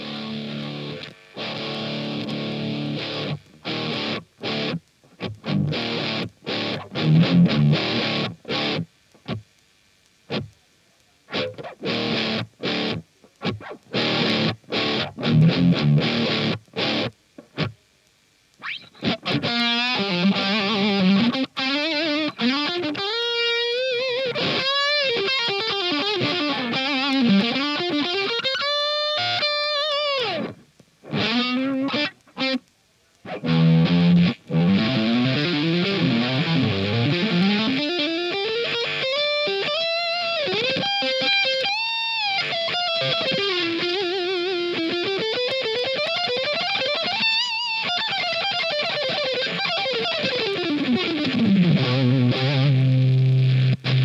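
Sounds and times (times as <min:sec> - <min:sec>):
overdriven electric guitar: 0:00.0 - 0:10.6, 0:11.2 - 0:54.0.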